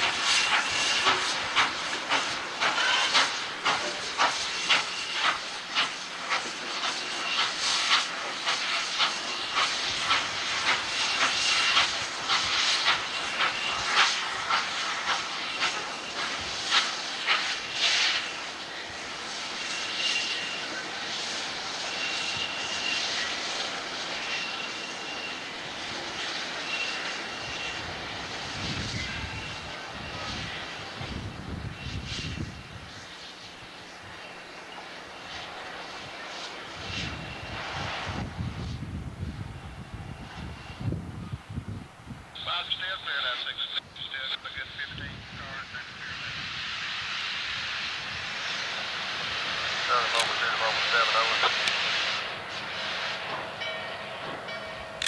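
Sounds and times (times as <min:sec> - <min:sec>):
steam locomotive chuffing: 0:00.0 - 0:38.8, 0:42.4 - 0:55.0
steady rush of steam: 0:00.0 - 0:55.0.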